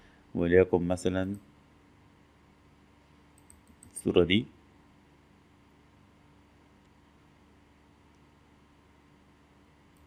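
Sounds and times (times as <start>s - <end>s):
computer mouse clicks: 3.3s - 4.0s.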